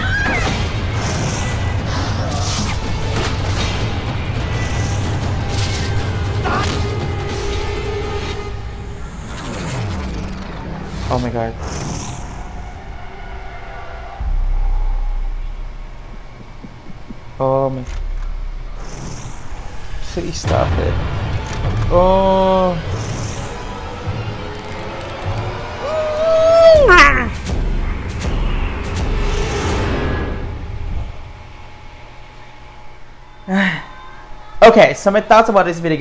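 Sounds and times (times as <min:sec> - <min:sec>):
low rumble: 0:00.5 - 0:33.1
deep low rumble: 0:04.0 - 0:20.2
eerie held tones: 0:12.2 - 0:18.8
quiet low hum: 0:12.5 - 0:20.2.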